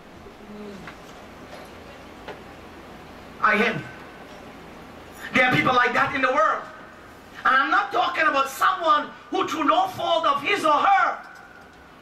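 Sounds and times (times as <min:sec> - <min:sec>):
person humming mm: 0:00.2 - 0:01.0.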